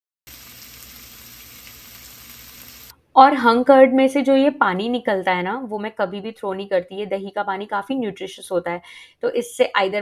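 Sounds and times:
food sizzling in frying pan: 0.3 - 3.0.

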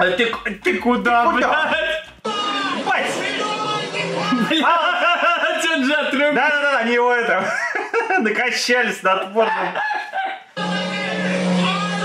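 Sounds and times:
man laughing hard: 7.4 - 8.3, 9.4 - 10.6.

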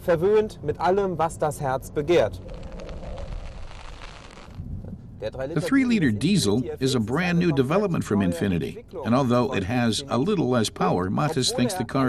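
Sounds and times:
rushing wind: 0.6 - 6.4.

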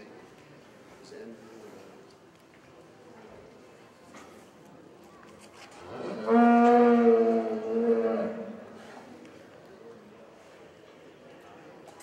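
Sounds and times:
cow mooing: 5.9 - 8.6.

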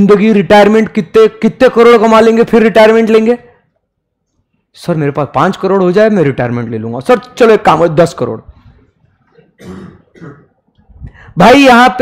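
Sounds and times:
man clearing throat: 9.3 - 10.6.

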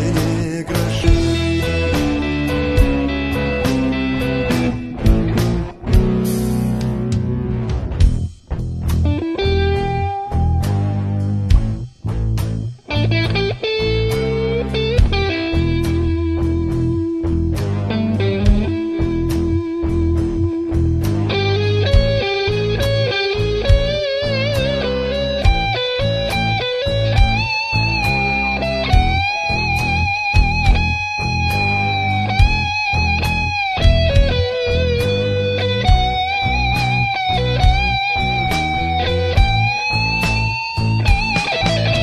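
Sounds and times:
electric guitar lead with vibrato: 0.0 - 8.2, 9.0 - 11.9, 12.8 - 42.0
steady drum beat: 0.0 - 12.5, 15.0 - 17.7, 18.4 - 19.6, 20.2 - 24.8, 25.4 - 27.6, 28.9 - 42.0
bass: 0.0 - 42.0.

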